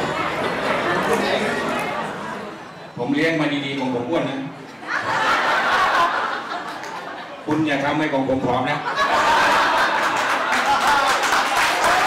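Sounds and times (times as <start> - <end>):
people laughing together: 4.7 - 7.5, 8.8 - 11.6.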